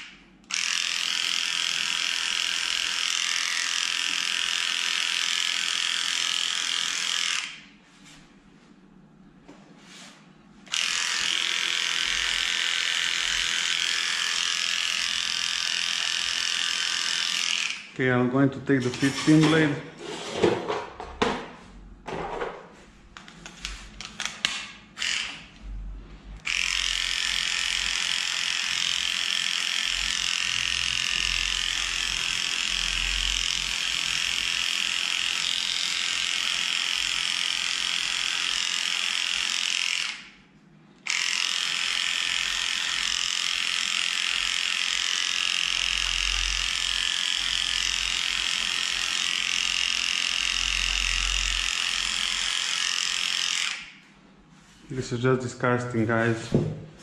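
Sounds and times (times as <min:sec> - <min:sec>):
electric clippers buzzing: 0:00.0 - 0:07.7, 0:10.7 - 0:18.0, 0:25.0 - 0:25.5, 0:26.4 - 0:40.4, 0:41.0 - 0:54.0.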